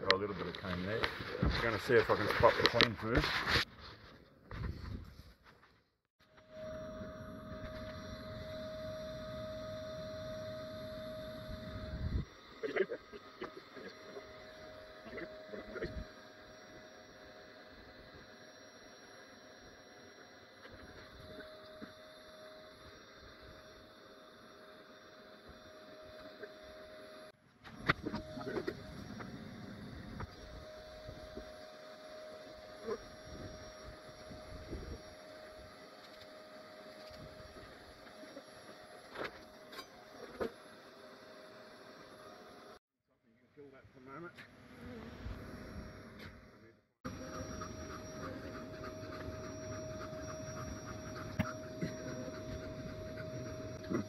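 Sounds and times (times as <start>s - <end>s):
faint tone: 6.3s - 12.9s, 43.6s - 54.0s
bee vacuum humming: 6.3s - 42.8s, 47.1s - 54.0s.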